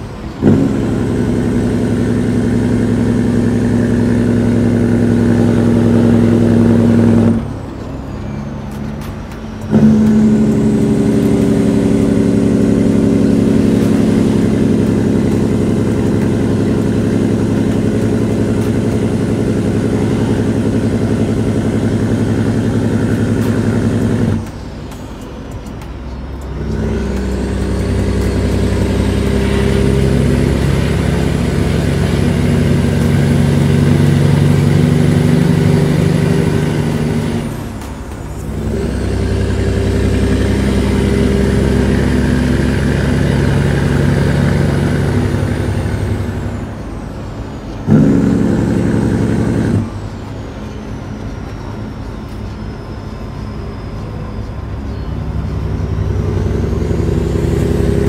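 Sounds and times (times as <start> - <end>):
diesel truck engine from cab: 0.0 - 58.0.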